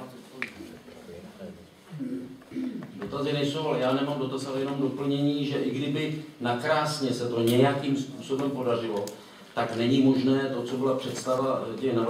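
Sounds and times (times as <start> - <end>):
faint murmur: 0.0 - 3.2.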